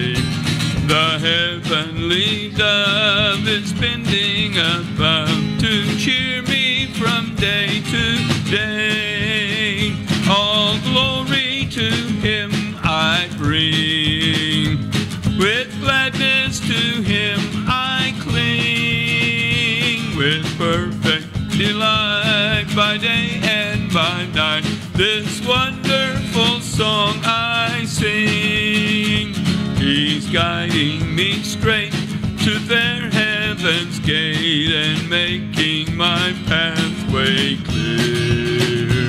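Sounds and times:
man singing a hymn: 0.0s - 39.0s
strummed acoustic guitar: 0.0s - 39.0s.

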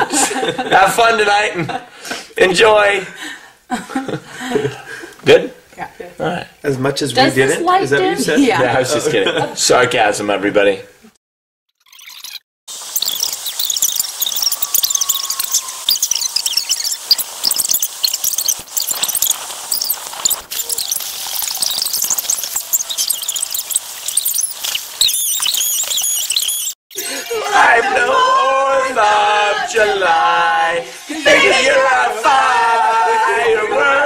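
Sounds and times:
girls squealing and shrieking: 14.4s - 17.0s, 27.0s - 27.8s.

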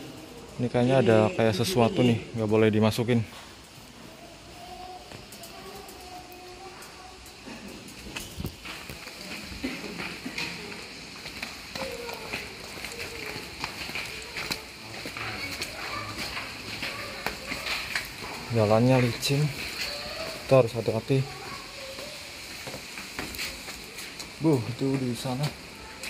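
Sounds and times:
faint voices talking: 0.0s - 26.0s
footsteps on stairs: 8.1s - 20.4s, 21.8s - 25.6s.

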